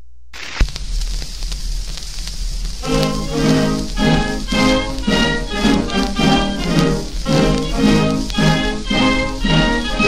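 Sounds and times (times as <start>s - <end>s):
record surface crackle and hiss: 0.0s - 10.0s
record clicks: 0.4s - 8.7s
instrumental song introduction: 2.8s - 10.0s.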